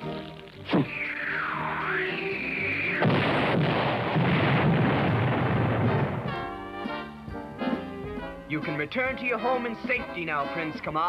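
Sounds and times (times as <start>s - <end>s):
music: 0.0s - 11.0s
cartoon cannon firing: 2.8s - 7.0s.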